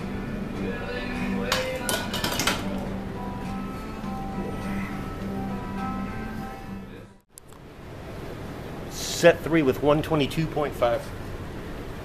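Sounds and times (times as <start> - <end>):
background music: 0.0 - 7.2.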